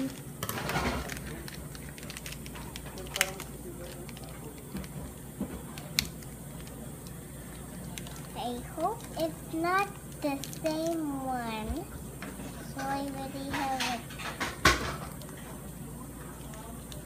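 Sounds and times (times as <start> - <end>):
plastic wrapper crinkling: 0.0 - 11.3.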